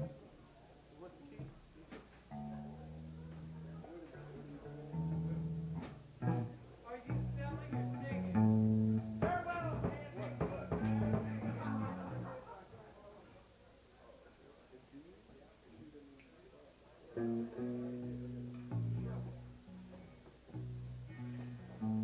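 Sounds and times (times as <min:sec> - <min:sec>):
person speaking: 0:09.2 - 0:12.5.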